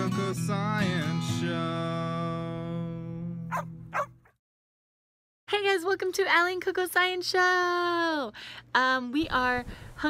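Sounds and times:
acoustic guitar chord ringing: 0:00.0 - 0:03.9
dog barks: 0:03.5 - 0:04.3.

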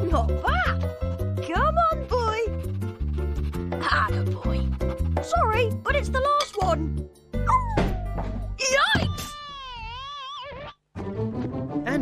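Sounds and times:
cartoon dog whining yelps: 0:08.7 - 0:10.8.

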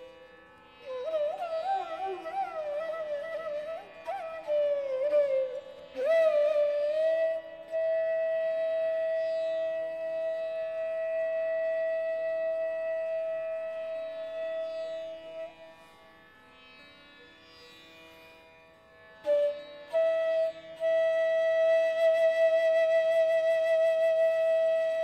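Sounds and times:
bamboo flute long note: 0:00.8 - 0:15.5, 0:19.2 - 0:25.0.

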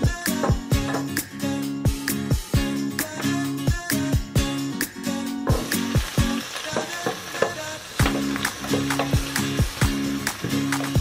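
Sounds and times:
background music with a beat: 0:00.0 - 0:11.0
onion sizzling in oil: 0:05.4 - 0:11.0.

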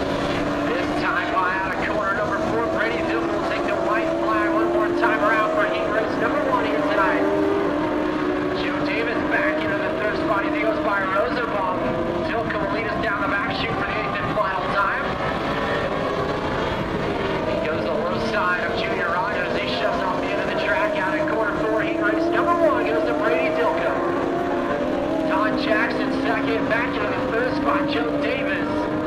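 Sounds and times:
racing engines droning: 0:00.0 - 0:29.0.

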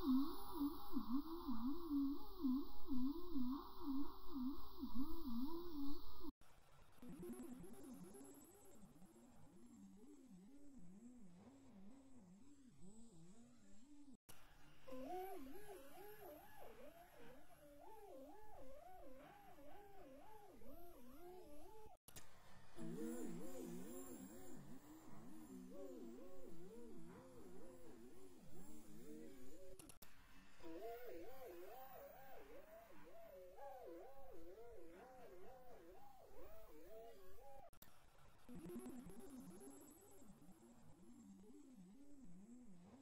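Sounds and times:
electronic tone with heavy vibrato: 0:00.0 - 0:06.3.

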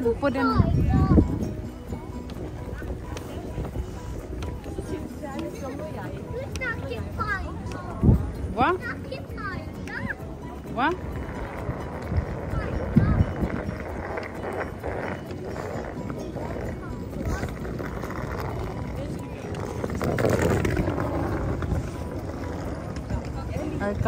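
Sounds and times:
chatter of passers-by: 0:00.0 - 0:24.0
traffic rumble: 0:00.0 - 0:24.0.

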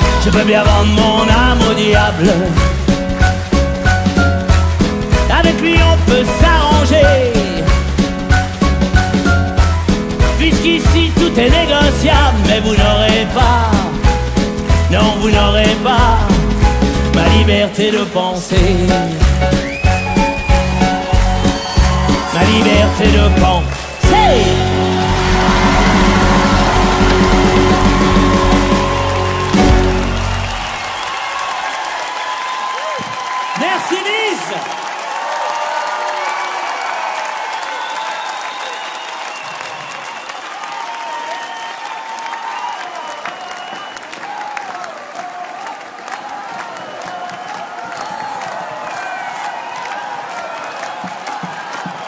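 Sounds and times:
pop song with full band: 0:00.0 - 0:31.0
audience applauding and cheering: 0:00.0 - 0:52.0.

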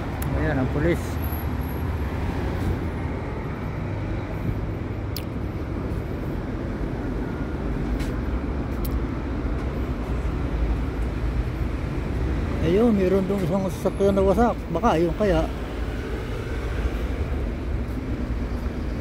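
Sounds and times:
passing cars rumbling: 0:00.0 - 0:19.0.

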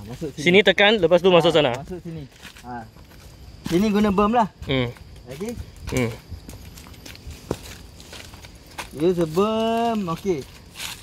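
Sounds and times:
footsteps on dry leaves: 0:05.2 - 0:11.0.

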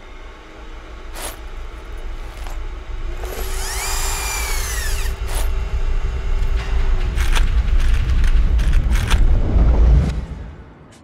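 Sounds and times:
small electric motor whine: 0:00.0 - 0:09.2
low hum and rumble: 0:00.0 - 0:11.0.

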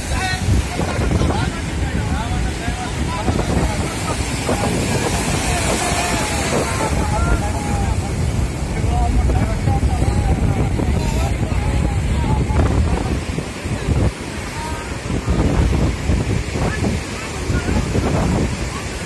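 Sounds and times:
people talking: 0:00.0 - 0:19.0
surf breaking: 0:00.0 - 0:19.0
wind buffeting microphone: 0:00.0 - 0:19.0.

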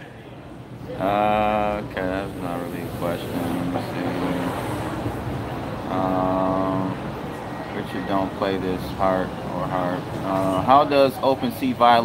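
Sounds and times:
street traffic: 0:00.0 - 0:12.0.

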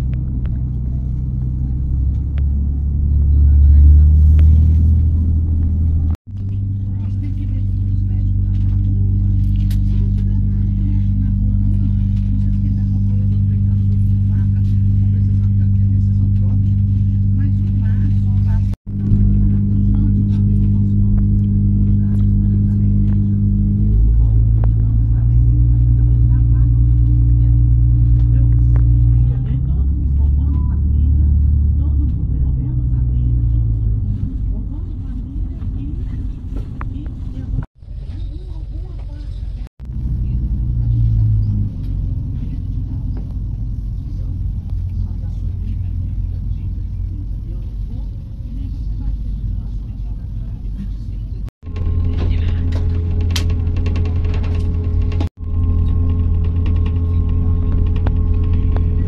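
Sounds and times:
diesel train engine drone: 0:00.0 - 0:59.0.

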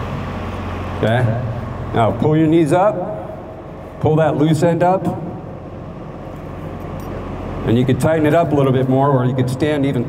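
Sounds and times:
low background rumble: 0:00.0 - 0:10.0
man speaking: 0:04.0 - 0:05.3, 0:07.7 - 0:10.0.

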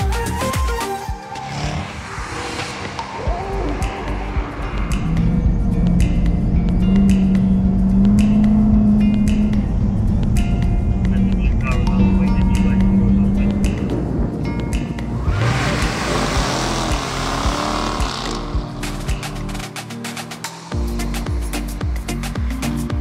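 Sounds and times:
music: 0:00.0 - 0:23.0
car engine revving hard: 0:15.2 - 0:18.7.

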